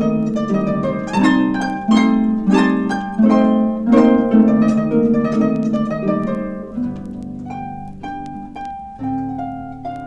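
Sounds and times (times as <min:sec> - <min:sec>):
harps playing: 0:00.0 - 0:10.0.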